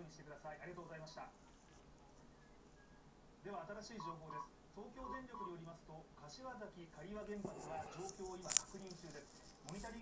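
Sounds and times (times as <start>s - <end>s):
television news speech: 3.4s - 10.0s.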